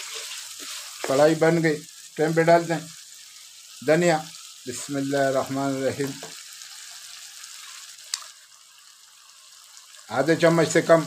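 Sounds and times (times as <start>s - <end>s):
meat sizzling in frying pan: 0.0s - 11.0s.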